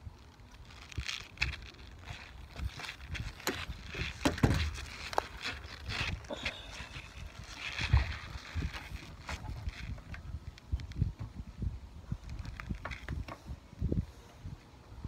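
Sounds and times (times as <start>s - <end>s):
knocks and shuffling on wooden boards: 2.5s - 7.0s.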